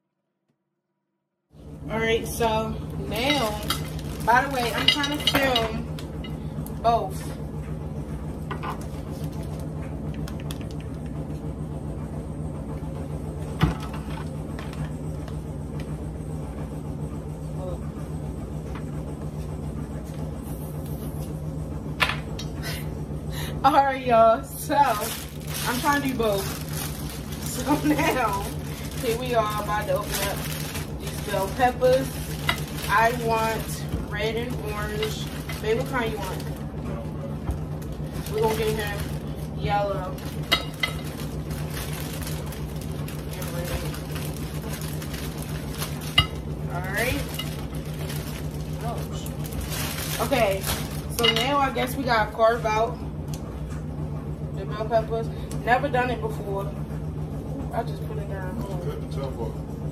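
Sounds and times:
steady low hum: 0:01.5 - 0:59.9
plastic bag rustling: 0:03.0 - 0:05.8, 0:24.6 - 0:36.8, 0:37.6 - 0:51.7.

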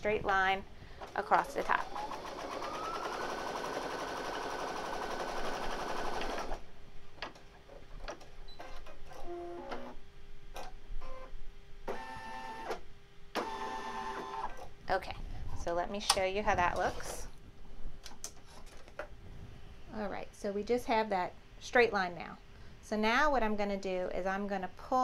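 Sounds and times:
faint machine hum: 0:00.0 - 0:25.0
embroidery machine stitching: 0:01.3 - 0:06.6.

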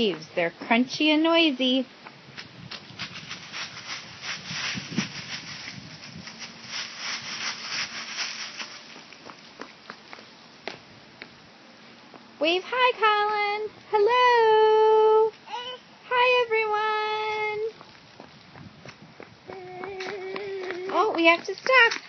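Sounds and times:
footsteps crunching dry leaves: 0:02.6 - 0:10.3.

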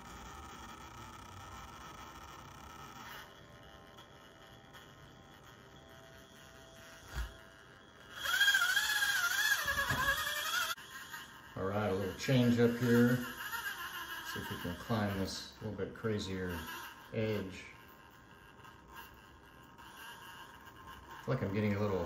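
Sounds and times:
small electric motor whine: 0:00.0 - 0:22.0.

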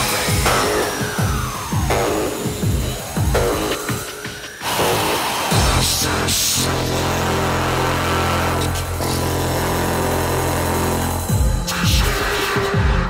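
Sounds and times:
crash cymbal: 0:00.0 - 0:13.0
distorted buzzing synth note: 0:04.6 - 0:11.9.

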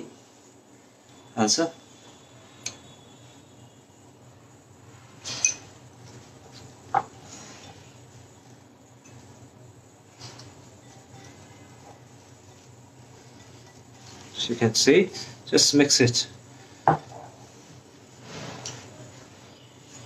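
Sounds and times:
quiet room hum: 0:00.0 - 0:20.0.

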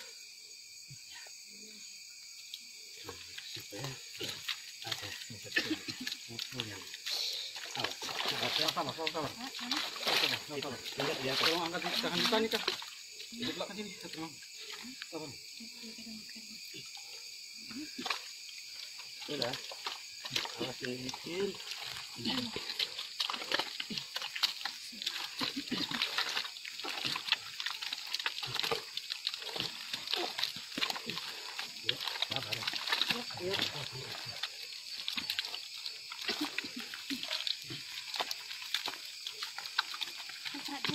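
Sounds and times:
forest insects droning: 0:00.0 - 0:40.9
mud sloshing: 0:02.6 - 0:40.9
people calling and grunting: 0:02.9 - 0:39.2, 0:40.2 - 0:40.9
people talking: 0:04.9 - 0:12.8, 0:22.2 - 0:22.6, 0:31.9 - 0:34.1, 0:40.6 - 0:40.9.

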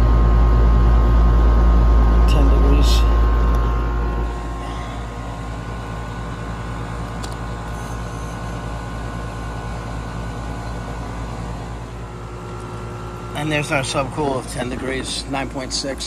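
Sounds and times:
air conditioning unit humming: 0:00.0 - 0:16.0.

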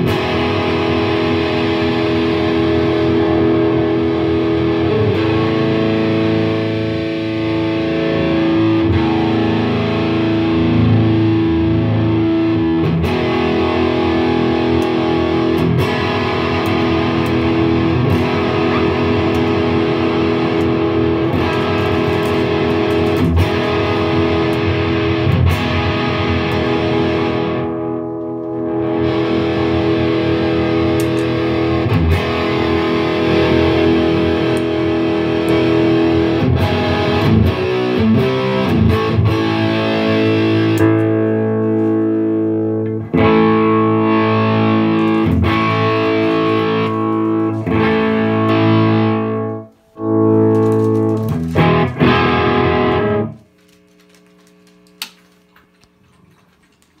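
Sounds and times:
distorted electric guitar chords: 0:00.0 - 0:56.0
amp click: 0:14.3 - 0:27.0, 0:30.6 - 0:36.0, 0:40.5 - 0:43.8.

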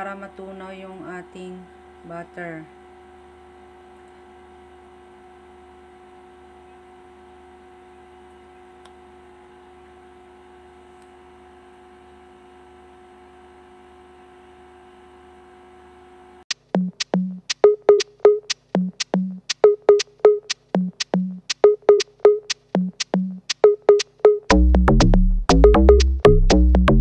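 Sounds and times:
electronic music with drum-machine beat: 0:16.5 - 0:27.0.

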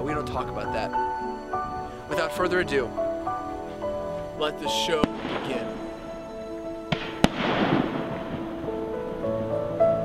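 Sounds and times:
music with held notes: 0:00.0 - 0:10.0
firework crackle: 0:03.8 - 0:09.8
firework bangs: 0:04.7 - 0:09.4.

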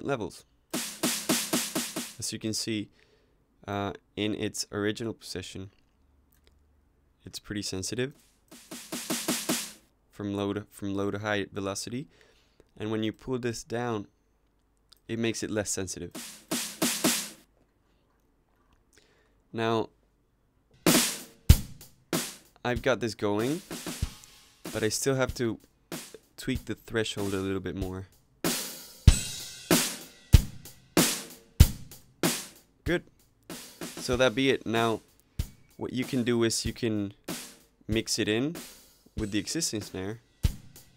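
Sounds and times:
drum loop kick and snare: 0:00.7 - 0:02.2, 0:08.5 - 0:09.8, 0:16.1 - 0:17.4, 0:20.9 - 0:27.5, 0:28.5 - 0:40.9
electronic snare hits: 0:00.8 - 0:02.2, 0:08.5 - 0:09.8, 0:20.9 - 0:22.4.

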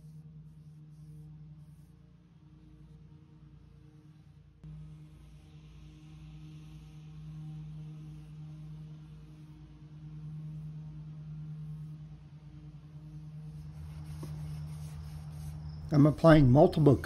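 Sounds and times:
low hum with faint pulsing: 0:00.0 - 0:17.0.

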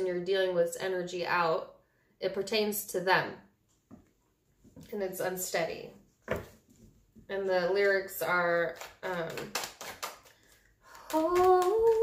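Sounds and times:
cards being shuffled: 0:07.8 - 0:12.0.

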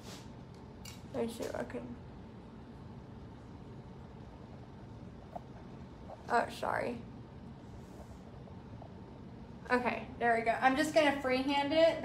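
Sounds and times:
faint low hum and hiss: 0:00.0 - 0:12.0.

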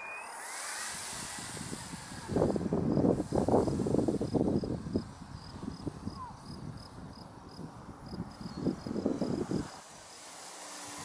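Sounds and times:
model airplane motor whine: 0:00.0 - 0:05.9, 0:08.4 - 0:11.0
rush of air: 0:00.0 - 0:06.1, 0:07.6 - 0:11.0.

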